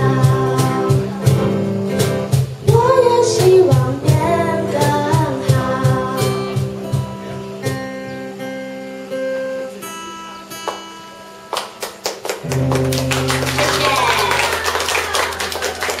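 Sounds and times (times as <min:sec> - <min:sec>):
acoustic guitar ensemble playing: 0:00.0 - 0:16.0.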